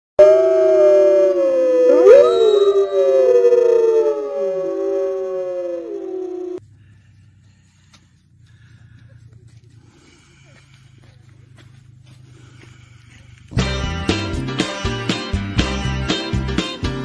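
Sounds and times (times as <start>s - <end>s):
long gliding howls: 0.2s - 6.6s.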